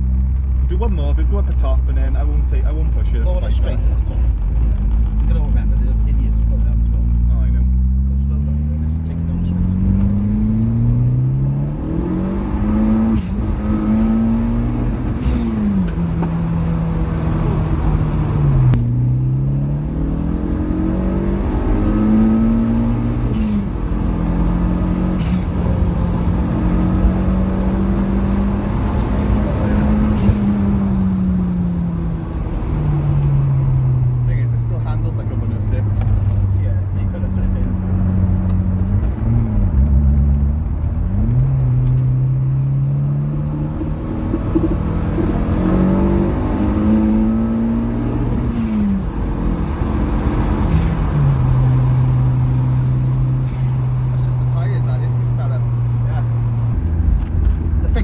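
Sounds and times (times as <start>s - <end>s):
car engine accelerating: 0.0s - 58.0s.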